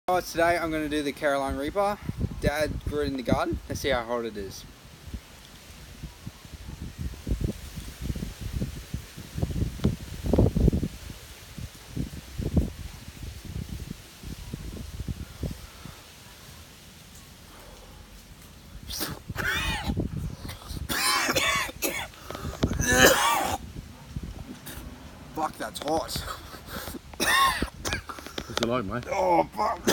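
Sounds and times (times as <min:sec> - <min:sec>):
man coughing: 0:18.9 - 0:22.1, 0:22.8 - 0:23.6, 0:26.2 - 0:28.2.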